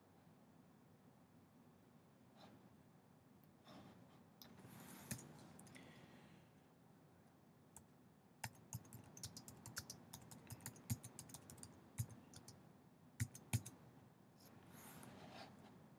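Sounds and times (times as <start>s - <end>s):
typing on a keyboard: 7.8s - 12.6s, 13.2s - 13.8s.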